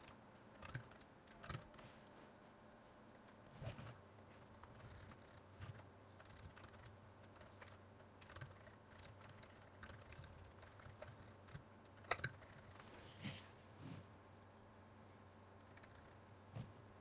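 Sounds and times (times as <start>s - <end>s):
keyboard typing: 0.0s - 1.8s, 3.8s - 12.8s, 15.6s - 16.2s.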